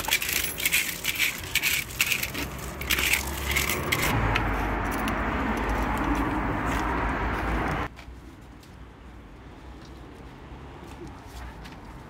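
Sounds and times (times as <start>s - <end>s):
crisp crunching and crackling: 0.0s - 4.1s
low rumble of road traffic: 0.0s - 12.0s.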